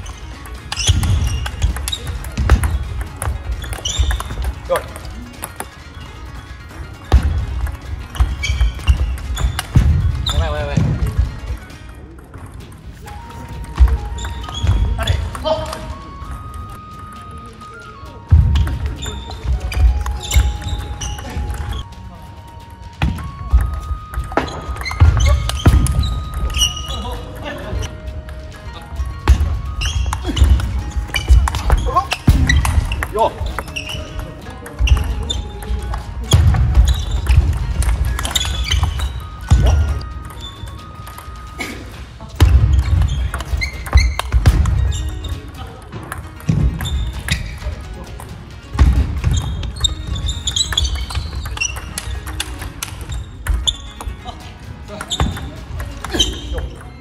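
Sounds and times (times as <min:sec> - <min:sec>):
background music with held notes: 0:00.0 - 0:57.0
sneakers squeaking: 0:00.0 - 0:57.0
table tennis ball clicking: 0:00.1 - 0:05.8, 0:49.3 - 0:54.1.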